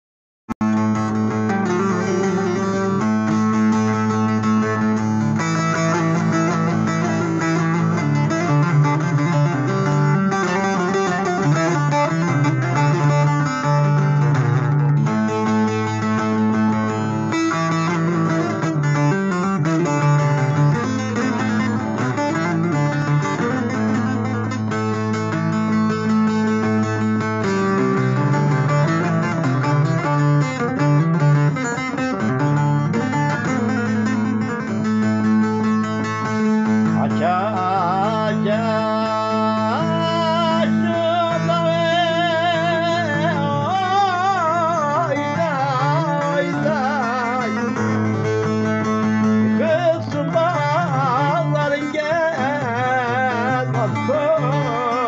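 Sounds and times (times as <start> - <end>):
plucked string melody: 0.6 - 55.0.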